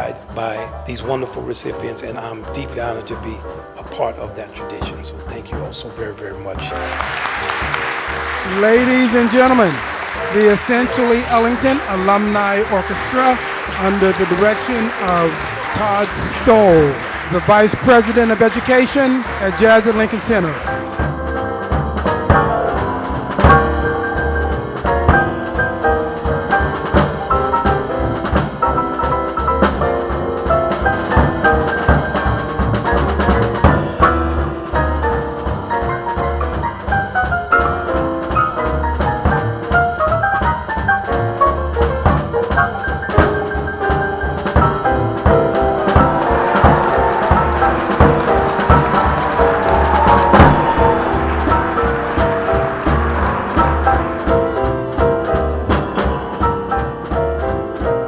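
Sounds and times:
bass: 0:00.0 - 0:58.0
drum and cymbal hits: 0:00.0 - 0:58.0
jazz big band playing: 0:00.0 - 0:58.0
horn section chords: 0:05.2 - 0:28.7, 0:44.9 - 0:57.9.

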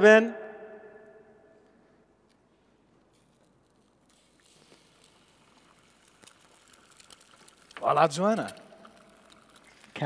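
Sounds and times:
egg cracking: 0:03.1 - 0:10.0
small pops: 0:03.1 - 0:10.0
egg sizzling in frying pan: 0:03.8 - 0:10.0.

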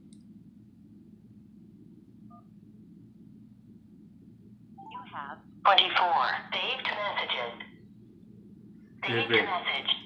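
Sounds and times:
low steady hum: 0:00.0 - 0:10.0
recorded voice through phone speaker: 0:04.9 - 0:07.6, 0:09.0 - 0:10.0.

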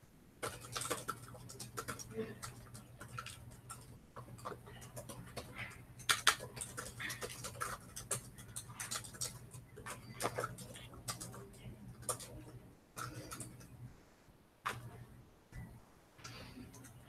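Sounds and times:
laptop keyboard typing: 0:00.0 - 0:13.8, 0:15.5 - 0:17.0.

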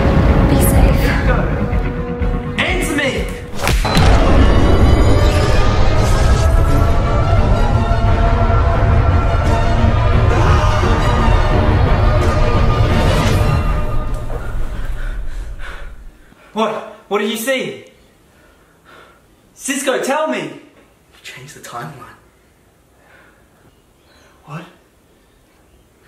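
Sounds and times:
dramatic film score music: 0:00.0 - 0:16.2
heavy thud: 0:03.5 - 0:06.8.

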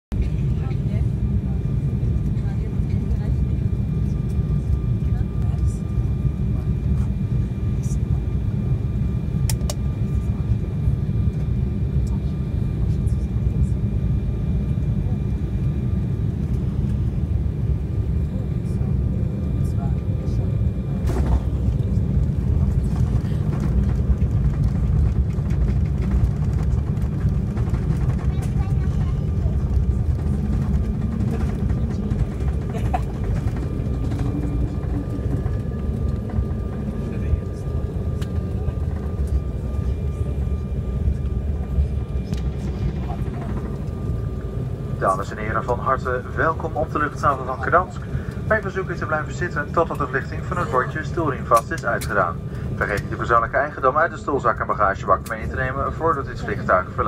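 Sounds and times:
jet engine and airflow rumble: 0:00.1 - 0:57.0
thin engine whine: 0:13.9 - 0:57.0.

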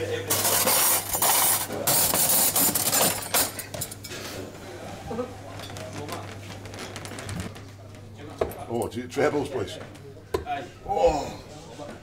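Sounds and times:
cutlery clattering: 0:00.3 - 0:04.2
cutlery clinking on plates: 0:01.2 - 0:04.2.

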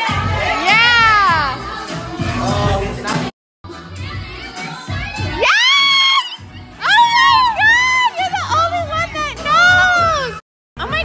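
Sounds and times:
woman screaming: 0:05.3 - 0:08.2.

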